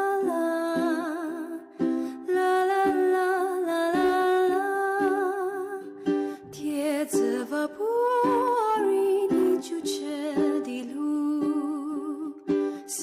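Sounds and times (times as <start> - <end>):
person singing with vibrato: 0.0 - 13.0
plucked string accompaniment: 0.0 - 13.0.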